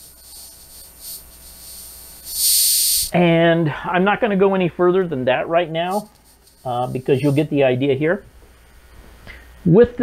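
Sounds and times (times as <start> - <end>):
faint high hiss: 0.0 - 10.0.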